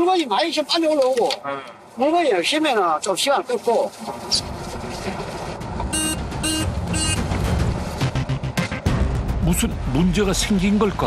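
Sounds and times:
electronic alarm beeps: 0:05.9 - 0:07.2.

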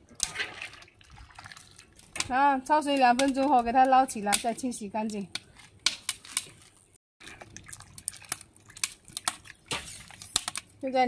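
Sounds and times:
water dripping and splashing: 0:00.0 - 0:05.2, 0:06.1 - 0:10.8.

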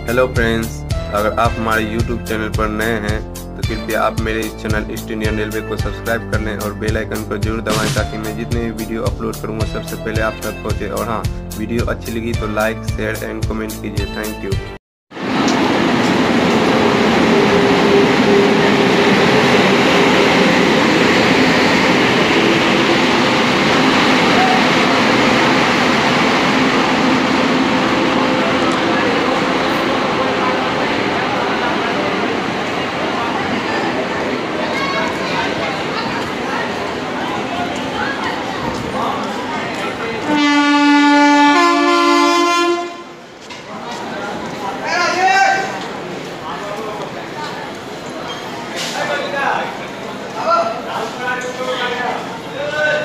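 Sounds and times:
train wheels rumbling on rails: 0:15.2 - 0:41.0
platform chatter: 0:16.4 - 0:53.0
train horn: 0:40.2 - 0:43.2.

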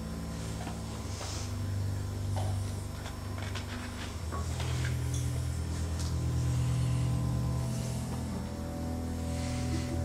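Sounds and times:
low sustained chord music: 0:00.0 - 0:10.0.

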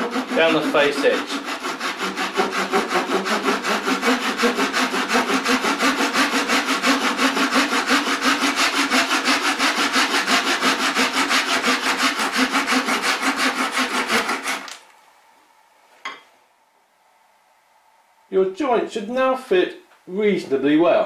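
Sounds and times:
hand saw cutting wood: 0:00.0 - 0:14.8.

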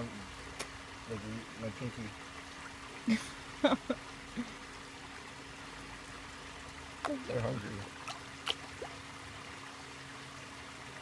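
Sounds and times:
faint steady hum: 0:00.0 - 0:11.0
water trickling in a pond: 0:00.0 - 0:11.0.

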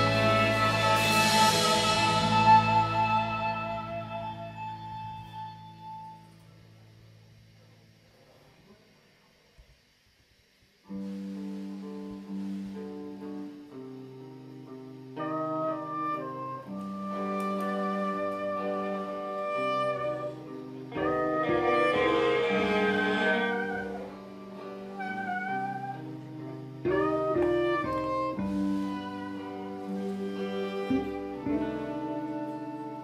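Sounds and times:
live band electric guitars and keyboards: 0:00.0 - 0:06.2, 0:15.1 - 0:33.0.

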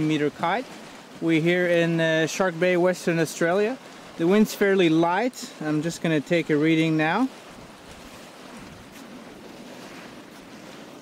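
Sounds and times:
light breeze: 0:00.0 - 0:11.0
small waves washing on sand: 0:00.0 - 0:11.0.

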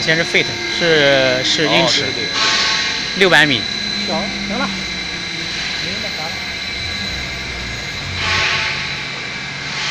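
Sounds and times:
faint high whine: 0:00.0 - 0:09.8
machine mechanical drone: 0:00.0 - 0:09.9.

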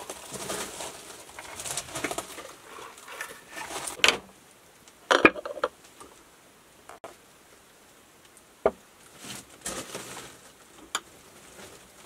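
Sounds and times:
rustling handling noise: 0:00.0 - 0:06.3, 0:09.0 - 0:12.0
glass jars knocking and clinking: 0:05.1 - 0:05.7.

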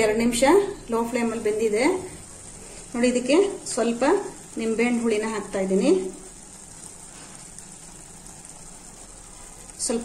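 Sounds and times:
curry sizzling in a pan: 0:00.0 - 0:10.0.

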